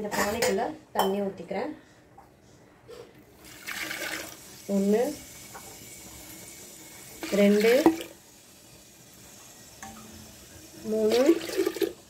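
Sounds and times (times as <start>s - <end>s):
water pouring into pot: 3.4s - 12.0s.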